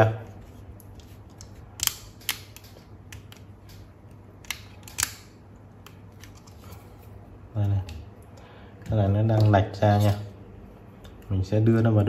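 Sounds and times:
plastic parts clicking together: 0:00.8 - 0:06.6.

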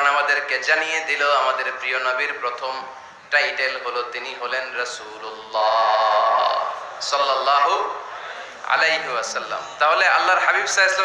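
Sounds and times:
man chanting held note: 0:03.4 - 0:07.9.

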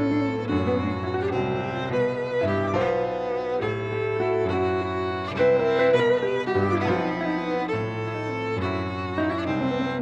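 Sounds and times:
violin slow melody: 0:00.0 - 0:10.0.

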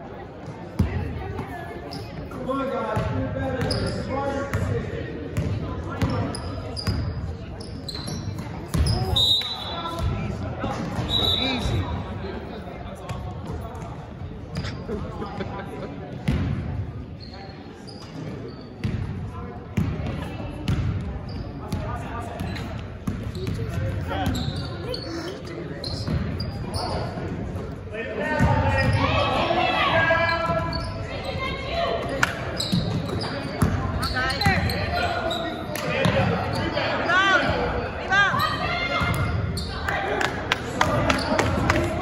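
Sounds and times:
voices echoing in gym: 0:00.0 - 0:42.0.

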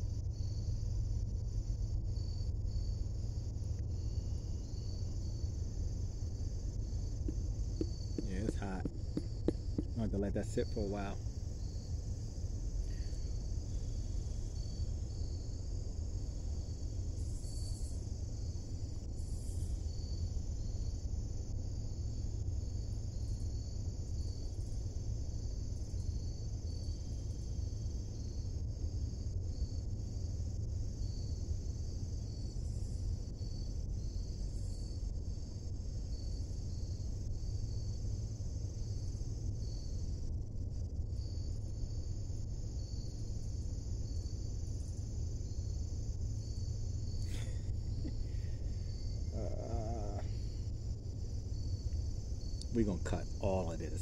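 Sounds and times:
crickets chirping: 0:00.0 - 0:54.0
low steady rumble: 0:00.0 - 0:54.0.

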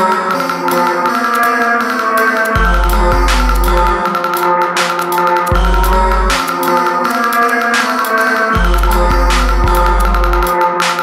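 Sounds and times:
electronic dance music: 0:00.0 - 0:11.0
pitched melodic notes: 0:00.0 - 0:11.0
ticking hi-hats: 0:00.0 - 0:11.0.

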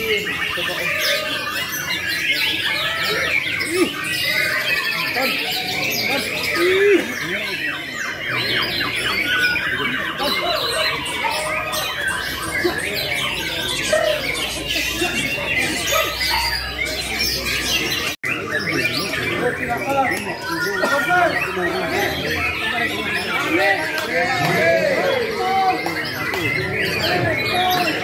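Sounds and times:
songbirds whistling and calling: 0:00.0 - 0:28.0.

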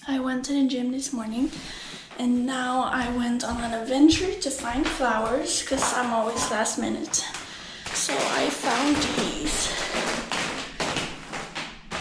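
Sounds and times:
crinkly plastic rustling: 0:05.4 - 0:12.0.

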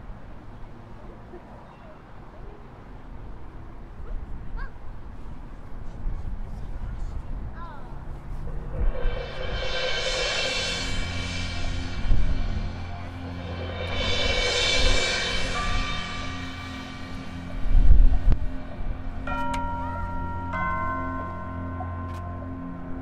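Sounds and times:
marching band sustained chords: 0:08.1 - 0:23.0
low drum hits: 0:08.6 - 0:19.8
ringing bell-like mallet tones: 0:19.2 - 0:23.0.

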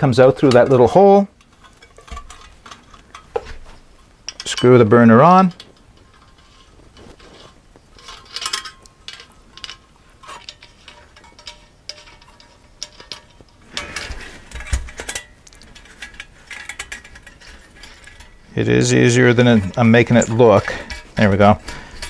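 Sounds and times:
metal clatter and knock: 0:00.0 - 0:22.0
metal stove parts clicking and rattling: 0:00.0 - 0:22.0.

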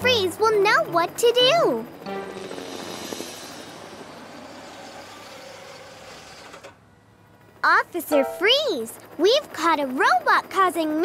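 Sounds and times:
cartoon helicopter rotor whirring: 0:00.0 - 0:11.0.

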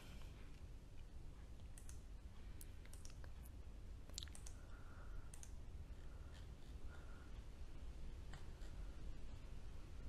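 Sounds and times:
faint low room hum: 0:00.0 - 0:10.0
small sharp clicks: 0:01.6 - 0:03.3, 0:04.1 - 0:04.6, 0:05.3 - 0:05.6.

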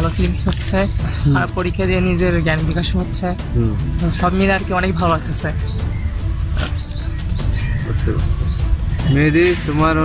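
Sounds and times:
small bird chirping: 0:05.3 - 0:09.3.

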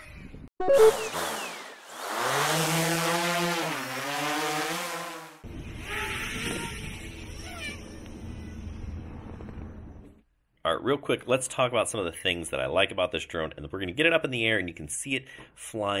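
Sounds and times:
pitched logo sound effect: 0:00.6 - 0:01.6.

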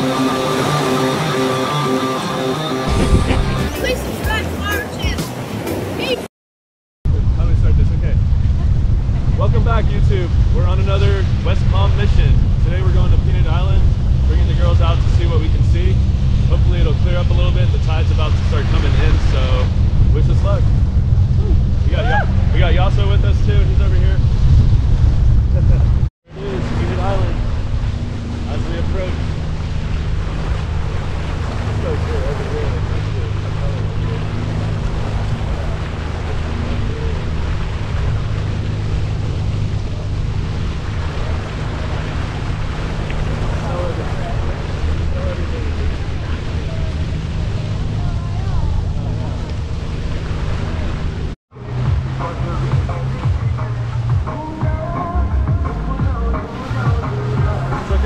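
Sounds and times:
jet ski engine running: 0:00.0 - 0:06.2, 0:07.1 - 0:58.0
rushing water: 0:00.0 - 0:06.3, 0:07.3 - 0:58.0
wind buffeting microphone: 0:02.9 - 0:06.2, 0:07.1 - 0:58.0.

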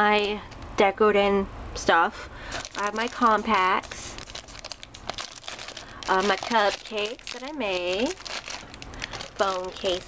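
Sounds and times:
plastic packaging crinkling: 0:02.4 - 0:10.0.

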